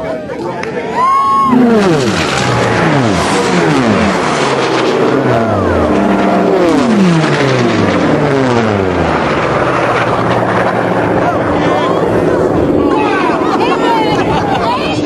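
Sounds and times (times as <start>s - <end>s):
racing planes passing low: 1.0s - 15.0s.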